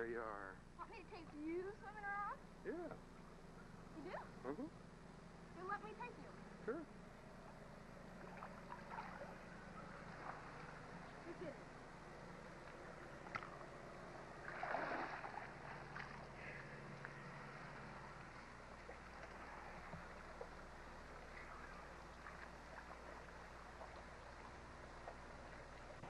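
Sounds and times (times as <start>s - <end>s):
steady low hum: 0.0s - 26.0s
distant voices calling: 2.5s - 26.0s
water movement in pool: 7.4s - 26.0s.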